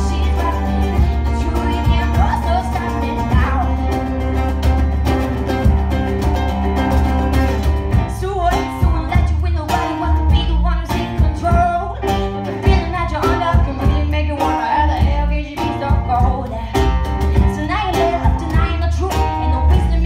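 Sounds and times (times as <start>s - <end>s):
drum beat: 0.0s - 9.4s
live band playing upbeat song: 0.0s - 20.0s.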